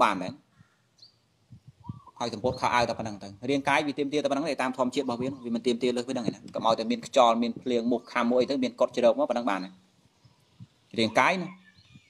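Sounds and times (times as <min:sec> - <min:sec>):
man preaching: 0:02.2 - 0:09.8, 0:10.9 - 0:11.6.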